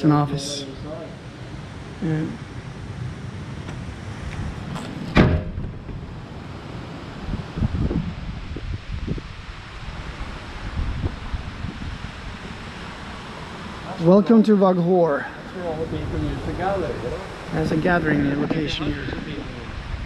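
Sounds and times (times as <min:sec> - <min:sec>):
wind rumbling on microphone: 0:00.0 - 0:14.0, 0:15.3 - 0:20.0
door banging shut: 0:05.1 - 0:06.0.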